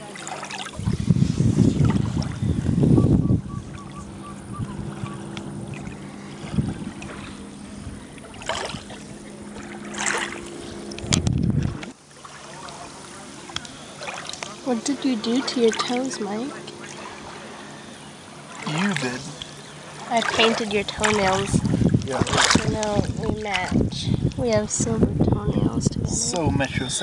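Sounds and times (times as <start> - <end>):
water lapping around wading feet: 0.0 - 25.5
steady low hum: 0.1 - 27.0
wind buffeting microphone: 0.7 - 12.0, 19.8 - 27.0.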